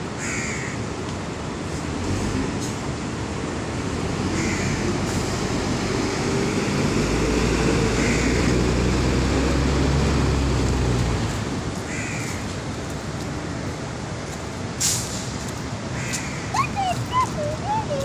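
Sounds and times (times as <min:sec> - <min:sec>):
city traffic rumble: 0:00.0 - 0:18.0
heavy vehicle passing: 0:01.8 - 0:12.0
bird calling: 0:16.0 - 0:18.0.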